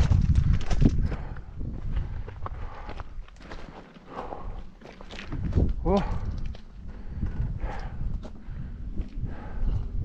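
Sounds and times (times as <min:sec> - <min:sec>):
bike tyres rattling over stones: 0:00.0 - 0:01.3.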